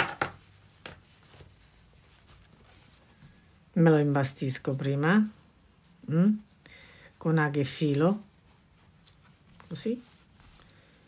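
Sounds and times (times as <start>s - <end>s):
faint fabric rustling: 0.3s - 11.0s.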